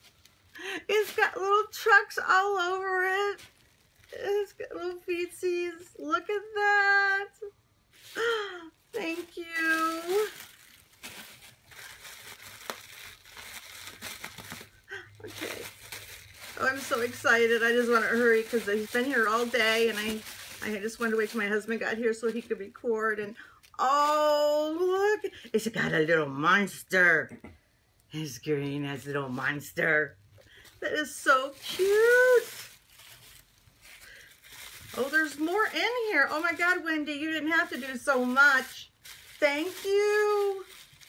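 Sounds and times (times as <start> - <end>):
tissue paper crinkling: 0.0 - 6.0, 7.9 - 25.8, 30.5 - 41.0
sharp paper crackle: 2.8 - 4.5, 9.1 - 22.8, 30.5 - 41.0.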